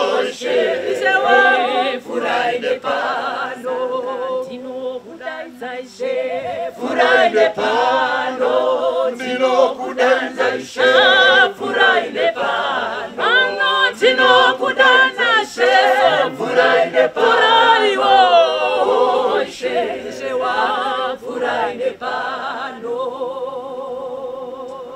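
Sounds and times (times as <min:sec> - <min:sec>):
church choir singing a cappella: 0:00.0 - 0:24.9
woman singing lead with vibrato: 0:00.0 - 0:24.9.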